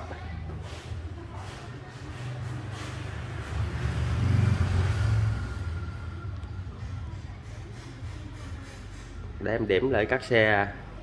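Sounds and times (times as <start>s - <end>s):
passing vehicle engine: 2.1s - 8.1s.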